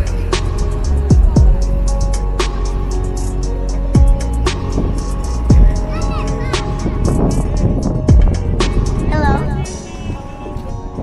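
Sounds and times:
deep bass thumps: 0.0 - 2.9, 3.8 - 9.7
loud music with a beat: 0.0 - 10.2
voice over music: 9.0 - 10.5.

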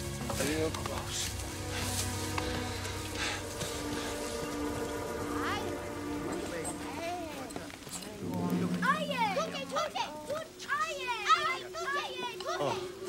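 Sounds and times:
low steady drone: 0.0 - 13.0.

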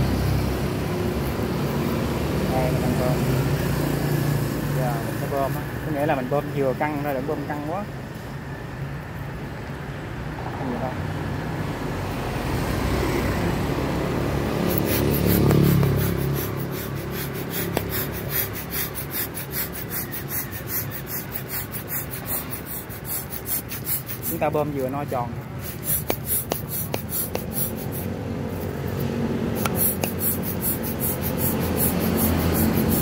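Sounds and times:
low traffic rumble: 0.0 - 33.0
balloon pump strokes: 14.6 - 33.0.

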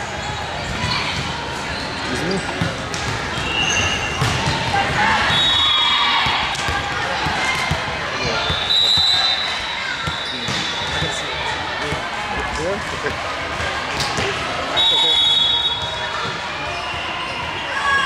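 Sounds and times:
balls bouncing and being struck: 0.0 - 5.4, 6.2 - 14.7
voices of players and spectators: 0.0 - 18.0.

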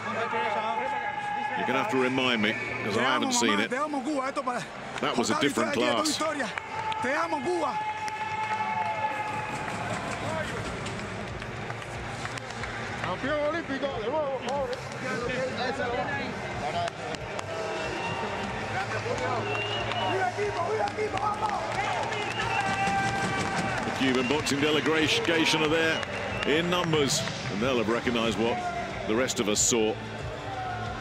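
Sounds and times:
people shouting and cheering: 0.0 - 11.8, 12.4 - 31.0.

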